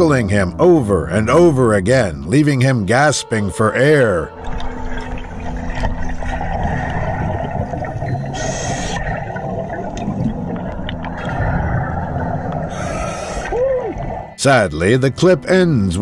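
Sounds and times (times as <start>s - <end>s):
diver exhaling bubbles underwater: 4.4s - 14.4s
regulator hiss: 8.3s - 9.2s.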